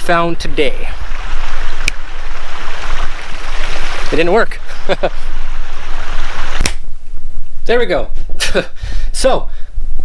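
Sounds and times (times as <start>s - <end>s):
creek water rushing: 0.4s - 6.7s
finger snap: 6.6s - 6.8s.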